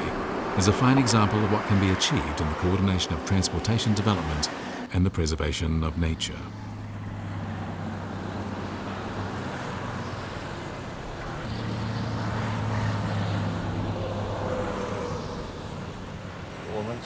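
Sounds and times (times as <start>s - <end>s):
vehicle engines: 0.0s - 17.0s
vehicle passing: 0.0s - 17.0s.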